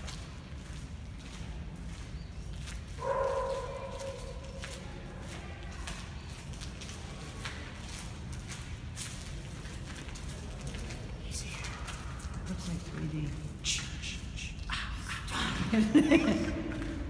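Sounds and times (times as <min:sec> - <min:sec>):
footsteps clicking and scuffing: 0:00.0 - 0:13.6.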